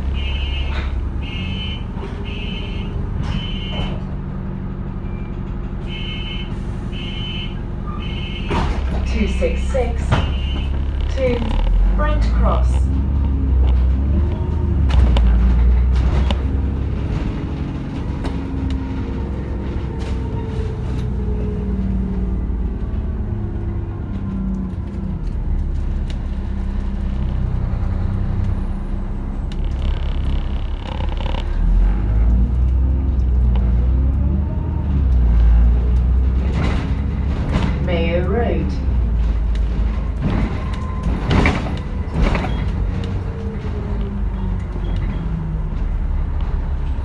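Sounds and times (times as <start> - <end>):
bus body knocks and rattles: 0.0 - 4.3, 8.0 - 11.6, 13.2 - 21.3, 36.1 - 47.0
bus engine and road rumble: 0.0 - 47.0.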